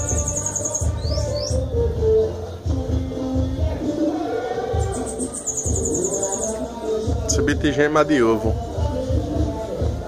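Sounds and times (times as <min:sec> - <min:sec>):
bird singing rapid trill: 0:00.0 - 0:03.4, 0:04.2 - 0:08.8
background music with beat: 0:00.0 - 0:10.0.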